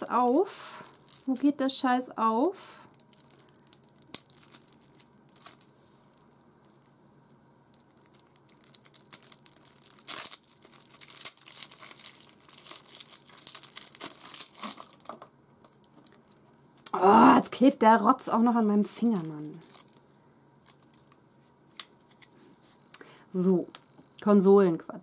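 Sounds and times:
wrapping crinkling and tearing: 0:00.0 - 0:01.6, 0:02.8 - 0:07.0, 0:07.7 - 0:16.9, 0:18.4 - 0:22.3.

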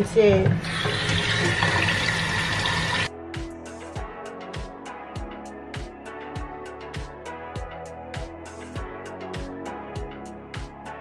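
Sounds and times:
faucet water splashing in sink: 0:00.0 - 0:03.1.

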